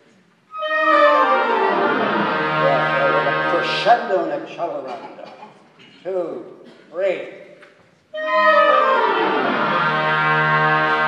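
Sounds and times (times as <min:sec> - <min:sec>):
woodwinds descending run: 0:00.5 - 0:04.0, 0:08.1 - 0:11.0
concert band playing: 0:00.5 - 0:04.1, 0:08.2 - 0:11.0.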